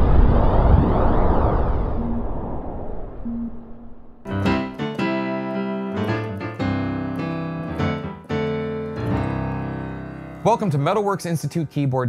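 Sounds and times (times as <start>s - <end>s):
deep noisy swell: 0.0s - 4.3s
short low tone blips: 1.6s - 4.5s.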